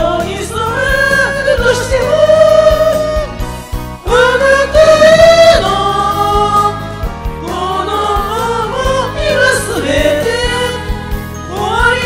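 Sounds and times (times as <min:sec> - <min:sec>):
karaoke backing track: 0:00.0 - 0:12.0
people singing pop ballad: 0:00.0 - 0:12.0.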